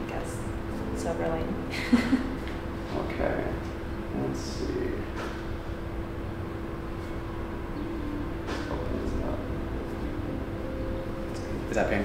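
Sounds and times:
steady mechanical hum: 0.0s - 12.0s.

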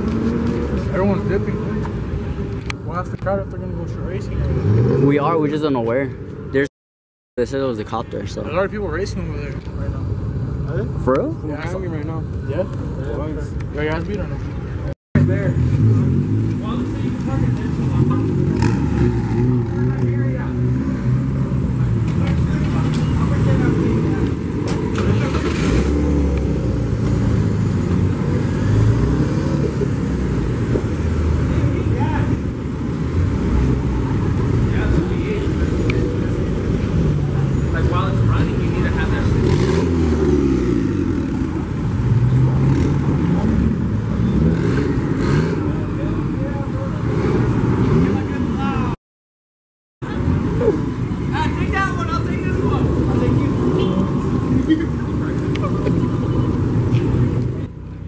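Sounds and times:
cars driving slowly past: 0.0s - 6.6s, 7.4s - 49.0s, 50.0s - 58.0s
people's voices: 7.4s - 49.0s, 50.0s - 58.0s
car engine revving: 15.2s - 48.9s.

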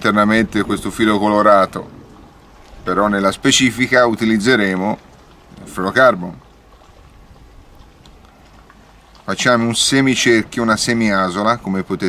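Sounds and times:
faint ticks: 6.4s - 9.6s.

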